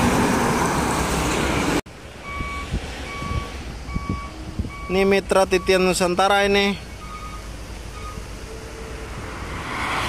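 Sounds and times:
highway traffic rushing: 0:00.0 - 0:10.0.

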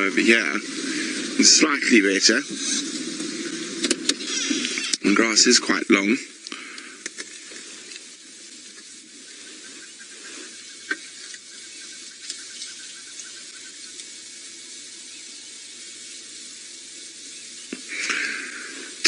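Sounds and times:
steady outdoor hiss: 0:00.0 - 0:19.0
faint clicks: 0:06.4 - 0:08.1, 0:12.1 - 0:14.2.

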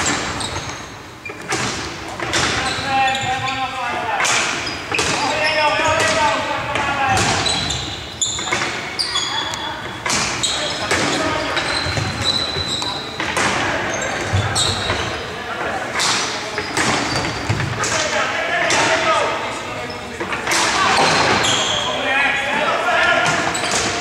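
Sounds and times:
short high squeaks: 0:00.0 - 0:01.5, 0:07.4 - 0:13.1, 0:21.0 - 0:22.0
hockey sticks knocking ball: 0:01.3 - 0:02.8, 0:03.9 - 0:07.8, 0:09.8 - 0:15.1, 0:15.9 - 0:19.1, 0:20.2 - 0:21.6
players shouting: 0:16.6 - 0:24.0.

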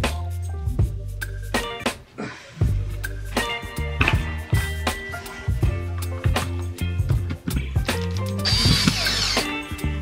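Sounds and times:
background music: 0:00.0 - 0:10.0
cordless drill driving screw: 0:08.4 - 0:09.6.

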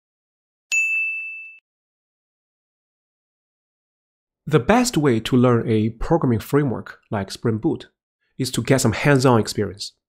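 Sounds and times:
bright bell-like ding: 0:00.7 - 0:01.6.

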